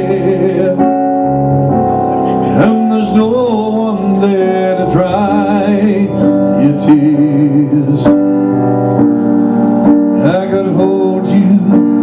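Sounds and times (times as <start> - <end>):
man singing a slow ballad: 0.0 - 1.4, 2.3 - 8.9, 10.1 - 12.0
digital piano chords: 0.0 - 12.0.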